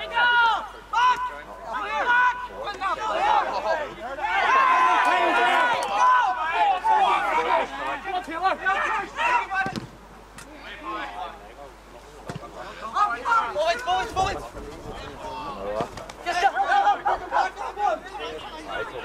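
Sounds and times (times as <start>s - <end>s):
men shouting to each other: 0.0s - 9.8s, 12.7s - 14.5s, 15.1s - 19.0s.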